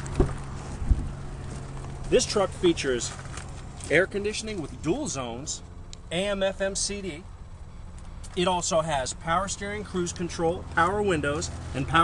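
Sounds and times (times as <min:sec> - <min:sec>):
truck door thump: 0:00.0 - 0:01.2
steady low hum: 0:00.0 - 0:12.0.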